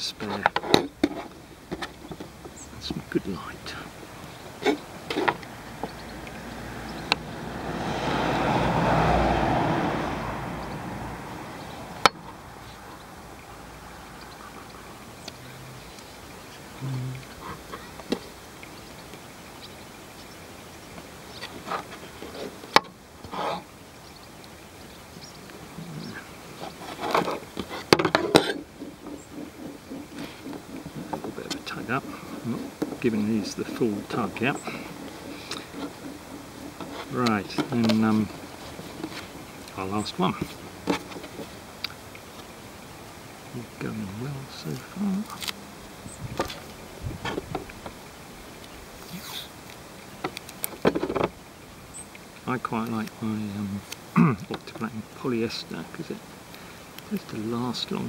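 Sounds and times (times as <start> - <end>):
broad rushing noise: 1.1 - 58.0.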